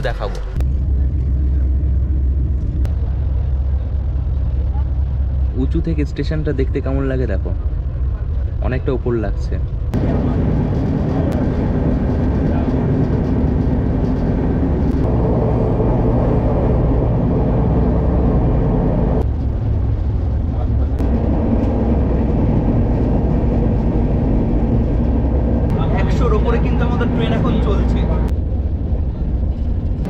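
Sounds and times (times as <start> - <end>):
train coach hum: 0.0 - 30.0
train wheels rumbling on rail: 0.0 - 30.0.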